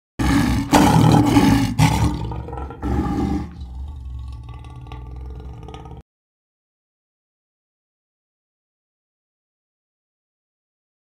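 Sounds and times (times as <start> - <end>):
lion roaring: 0.2 - 6.0.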